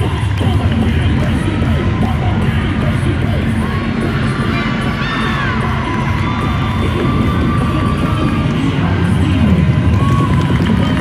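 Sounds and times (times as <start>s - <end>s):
cheerleading music mix over loudspeakers: 0.0s - 11.0s
crowd cheering and shouting: 0.0s - 11.0s.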